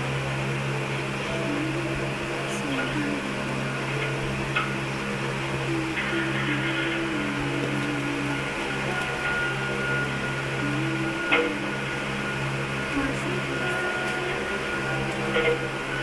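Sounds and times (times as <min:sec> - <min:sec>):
faint wavering tune: 0:00.0 - 0:16.0
steady low hum: 0:00.0 - 0:16.0.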